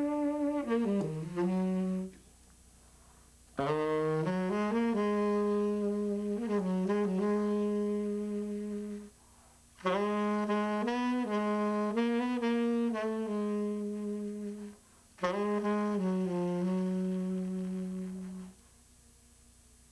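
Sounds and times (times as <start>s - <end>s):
saxophone playing slow jazz: 0.0s - 19.0s.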